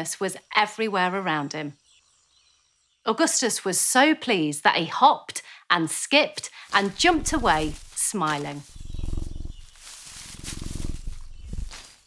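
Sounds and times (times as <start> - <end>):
tiger low pulsing rumble: 6.9 - 8.0, 8.6 - 11.8.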